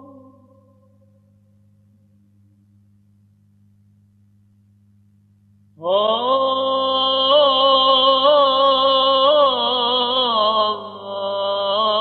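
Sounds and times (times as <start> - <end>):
faint low hum: 0.0 - 12.0
man chanting: 5.8 - 12.0.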